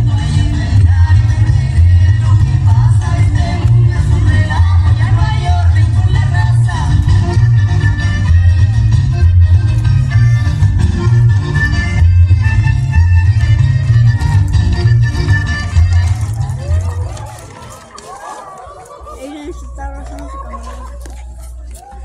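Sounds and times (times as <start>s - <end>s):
latin dance music with heavy bass: 0.0s - 17.5s.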